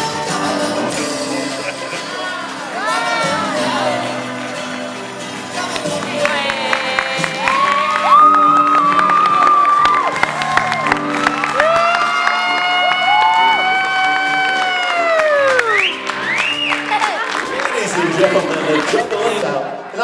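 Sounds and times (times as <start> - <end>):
music: 0.0 - 20.0
audience cheering and yelling: 6.1 - 19.3
long falling cry: 7.1 - 15.8.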